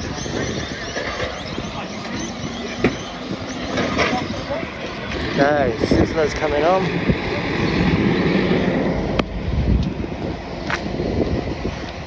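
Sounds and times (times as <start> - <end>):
golf buggy rumble and road noise: 0.0 - 12.0.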